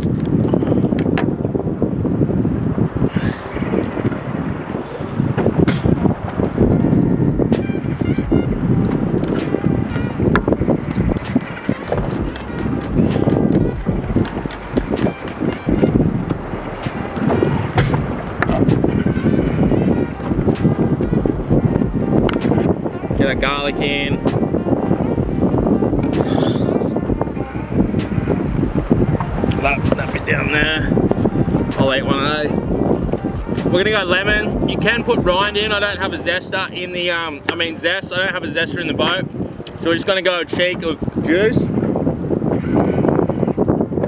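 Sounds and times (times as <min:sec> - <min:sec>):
background music: 0:00.0 - 0:41.6.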